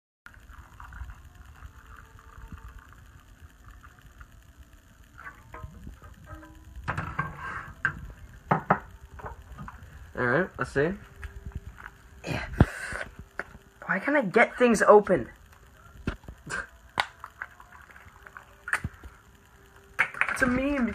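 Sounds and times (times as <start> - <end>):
liquid pouring into a mug: 0.3 - 4.2.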